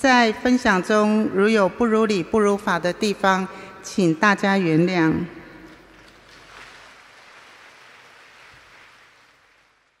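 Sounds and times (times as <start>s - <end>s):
faint audience applause: 6.2s - 10.0s.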